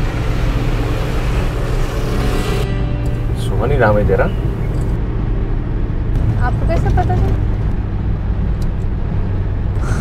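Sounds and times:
background music: 0.0s - 9.4s
car engine and road rumble: 0.0s - 10.0s.

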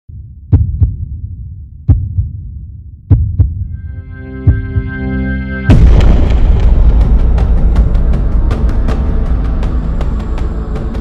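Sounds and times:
heartbeat thumps: 0.1s - 3.8s, 4.4s - 5.0s
low rumble: 0.1s - 11.0s
sustained musical tones: 3.7s - 6.0s.

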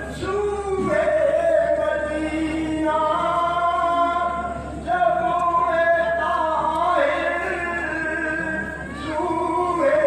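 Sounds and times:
man chanting unaccompanied: 0.0s - 10.0s.

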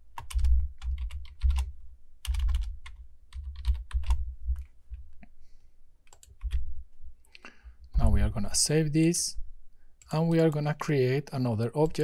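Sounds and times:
typing on computer keyboard: 0.2s - 4.7s, 6.1s - 6.6s.

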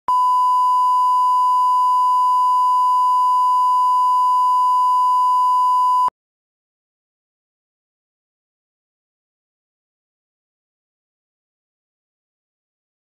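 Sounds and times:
steady test tone beep: 0.1s - 6.1s.

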